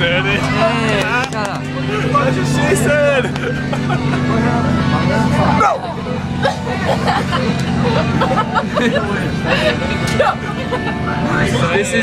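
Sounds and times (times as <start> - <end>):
bus engine droning: 0.0 - 12.0
teenagers laughing and chattering: 0.0 - 12.0.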